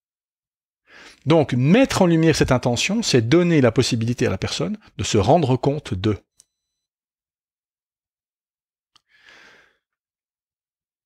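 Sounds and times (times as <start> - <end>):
person breathing in: 0.8 - 1.2, 9.0 - 10.0.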